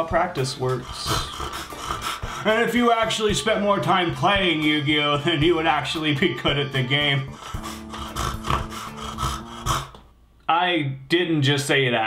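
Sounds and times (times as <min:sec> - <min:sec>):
rhythmic scratchy rasping: 0:00.0 - 0:10.1.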